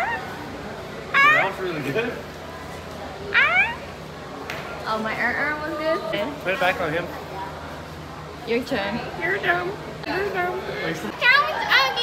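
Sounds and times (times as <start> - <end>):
macaw call: 1.2 - 1.6, 3.4 - 3.9.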